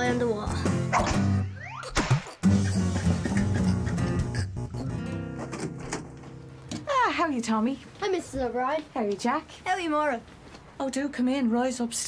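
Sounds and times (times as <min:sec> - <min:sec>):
plucked guitar music: 0:02.4 - 0:06.8.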